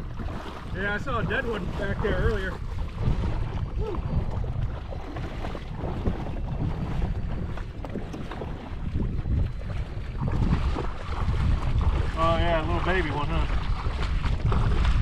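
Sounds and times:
splashing of wading in water: 0:00.0 - 0:15.0
wind buffeting microphone: 0:00.0 - 0:15.0.

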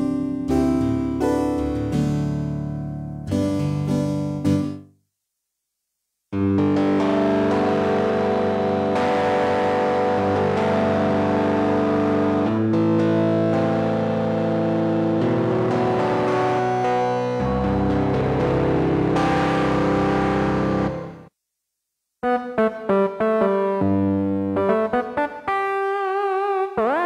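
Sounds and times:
synthesizer playing held chords: 0:06.4 - 0:21.3.

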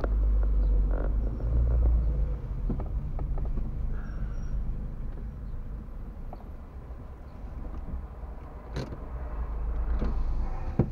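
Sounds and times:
car cabin rumble: 0:00.0 - 0:10.9.

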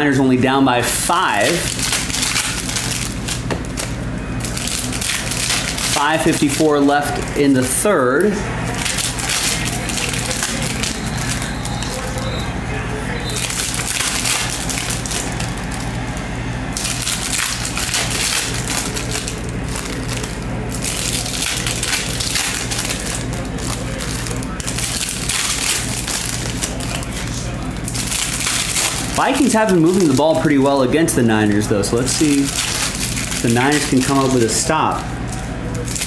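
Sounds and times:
steady low hum: 0:00.0 - 0:36.0
foil wrappers crinkling and tearing: 0:00.8 - 0:12.5, 0:13.1 - 0:36.0.

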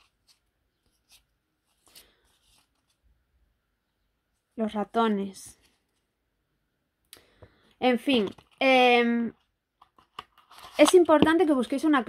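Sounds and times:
cardboard cards rustling and flicking: 0:09.8 - 0:12.0.

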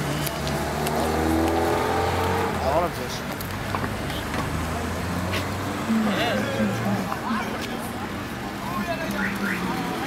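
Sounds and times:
vehicle engine rumbling: 0:00.0 - 0:10.0
voices: 0:02.4 - 0:10.0.

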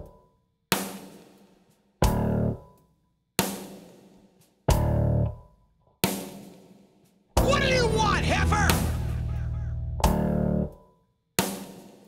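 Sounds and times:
rock band stop-start chords: 0:07.4 - 0:10.3.

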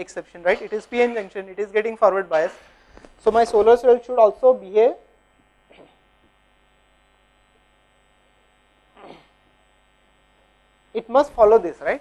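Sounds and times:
electrical hum and buzz: 0:00.0 - 0:12.0.

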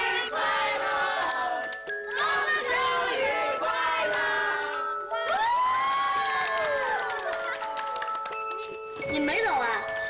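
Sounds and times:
people cheering and clapping: 0:00.0 - 0:09.0.

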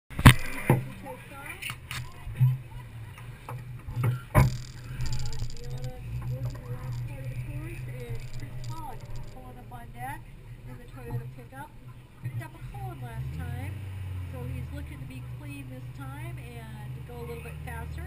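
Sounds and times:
car engine idling: 0:00.4 - 0:18.0
distant voices: 0:00.4 - 0:18.0.

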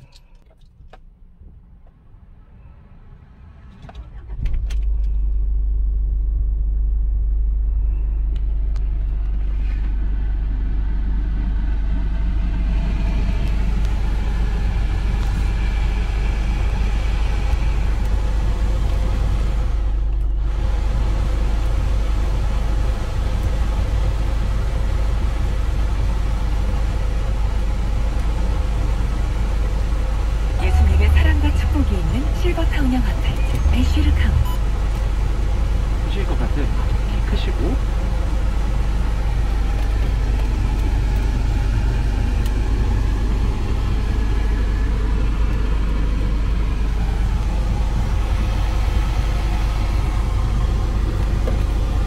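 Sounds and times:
car engine starting: 0:00.0 - 0:52.0
car engine idling: 0:03.5 - 0:52.0.

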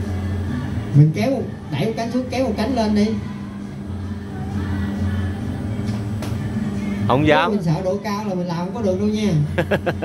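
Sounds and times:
background music: 0:00.0 - 0:10.0
ride machinery humming: 0:00.0 - 0:10.0.

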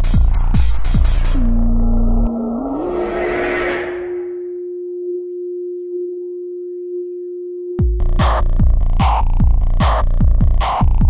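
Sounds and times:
held synthesizer note: 0:01.4 - 0:07.8.

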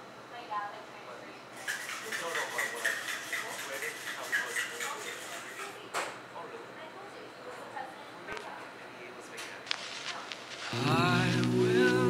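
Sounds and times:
metal shaker rattling: 0:01.6 - 0:05.8.

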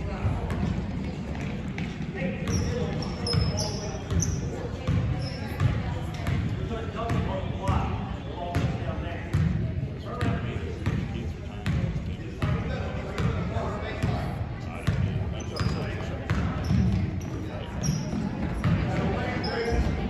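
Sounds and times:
voices of players and spectators: 0:00.0 - 0:20.0.

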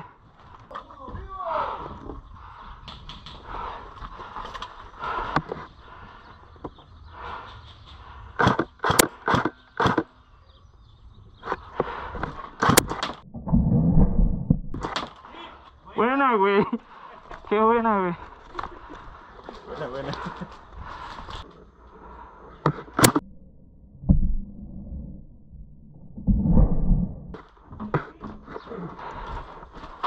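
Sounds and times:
airsoft rifle shots cracking: 0:08.4 - 0:10.1
loud low rumble: 0:13.2 - 0:14.8, 0:23.2 - 0:27.4.

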